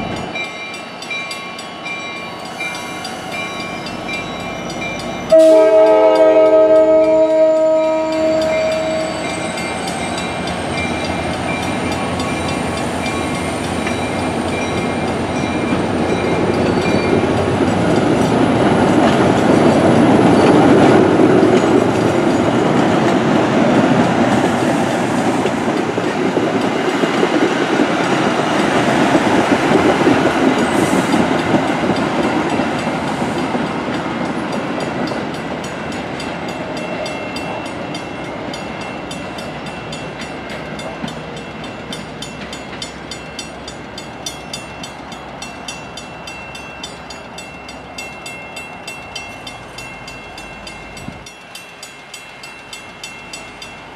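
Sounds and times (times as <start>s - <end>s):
train wheels rumbling on rails: 0.0s - 53.9s
train horn: 5.3s - 9.6s.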